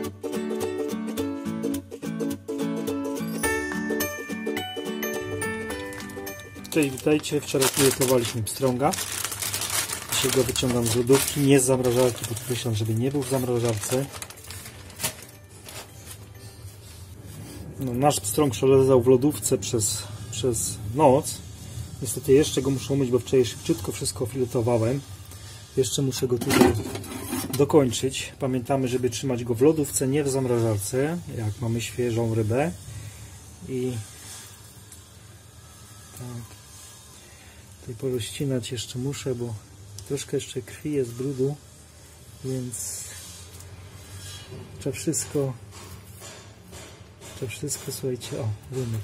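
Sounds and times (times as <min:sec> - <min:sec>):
plastic bag rustling: 0:05.0 - 0:18.6.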